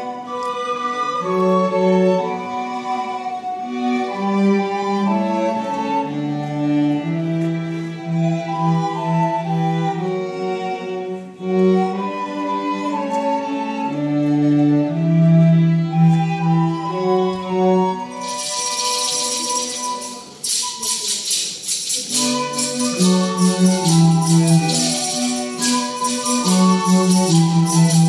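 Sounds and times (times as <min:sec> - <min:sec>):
string ensemble playing folk tune: 0:00.0 - 0:28.0
loud shaken jingling: 0:18.1 - 0:28.0.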